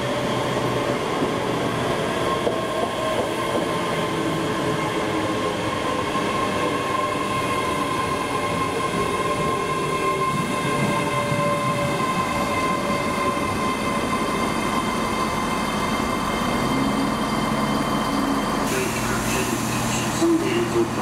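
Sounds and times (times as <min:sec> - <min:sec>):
train whine: 0:00.0 - 0:21.0.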